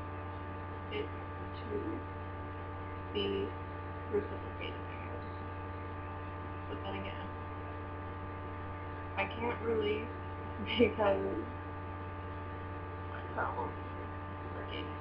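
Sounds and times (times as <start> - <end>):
electrical mains hum: 0.0 - 15.0
soft speech: 0.9 - 2.0, 3.2 - 3.5, 4.1 - 5.2, 6.7 - 7.3, 9.2 - 11.5, 13.2 - 15.0.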